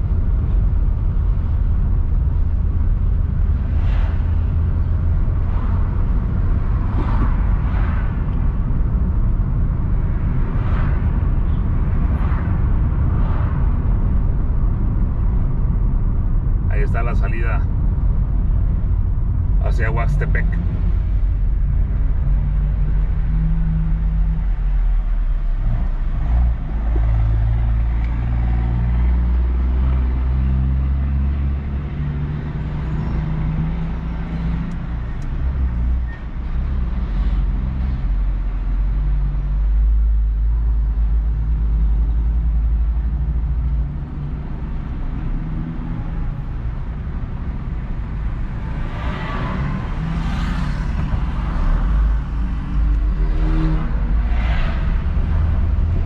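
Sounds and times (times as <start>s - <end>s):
car engine and road noise: 0.0s - 56.0s
engine hum: 0.0s - 56.0s.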